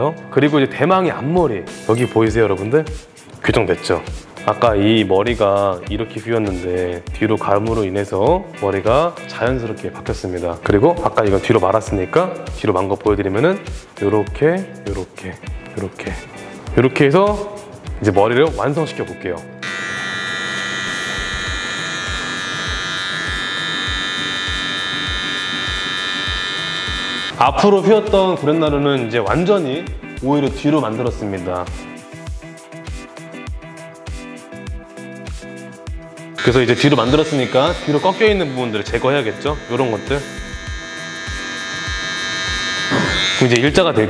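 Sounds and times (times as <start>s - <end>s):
background music with low beat: 1.1s - 44.0s
electric hair clipper buzzing: 19.6s - 27.3s, 36.4s - 43.8s.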